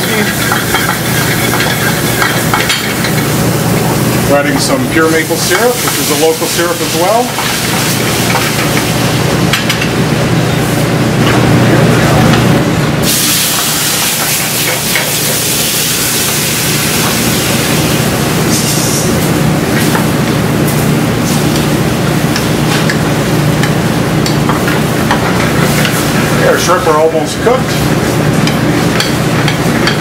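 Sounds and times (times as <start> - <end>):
shrimp sizzling in a pan: 0.0 - 4.1, 5.1 - 8.7, 13.0 - 19.9
flambe flare hissing rush: 0.0 - 30.0.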